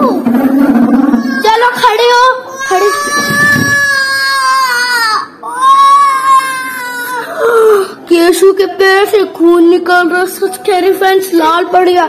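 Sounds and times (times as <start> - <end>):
small boy crying: 1.1 - 8.0.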